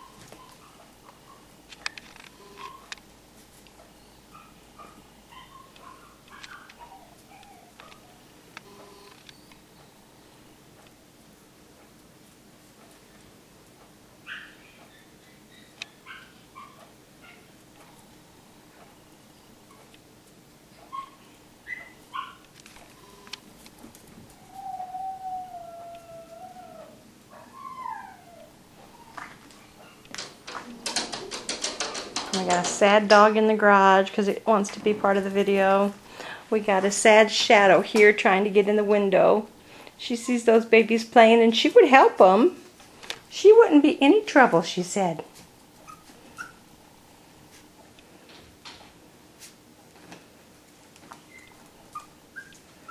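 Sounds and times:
dog yelping: 0.0s - 1.5s, 2.6s - 3.0s, 4.3s - 8.2s, 14.2s - 17.6s, 20.8s - 23.2s, 24.3s - 30.1s, 45.8s - 46.7s, 51.2s - 52.9s
dog whining and howling: 4.2s - 8.3s, 14.2s - 17.5s, 20.8s - 23.1s, 24.3s - 30.0s, 45.8s - 46.7s, 51.2s - 52.9s.

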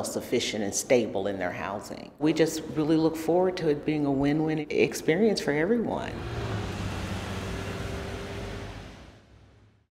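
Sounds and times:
car driving with road hiss: 6.2s - 9.9s.

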